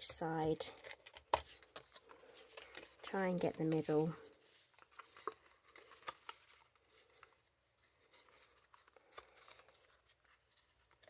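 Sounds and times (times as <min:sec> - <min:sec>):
plastic sheet and card rustling: 0:00.0 - 0:11.0.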